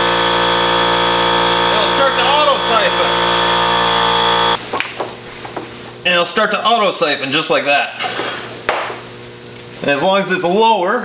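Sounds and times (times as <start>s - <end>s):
sharp knock: 8.7s - 9.0s.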